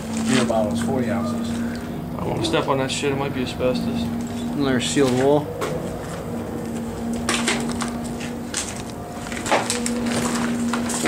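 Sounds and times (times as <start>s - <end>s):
steady low hum: 0.0s - 11.0s
debris crunching underfoot: 7.2s - 11.0s.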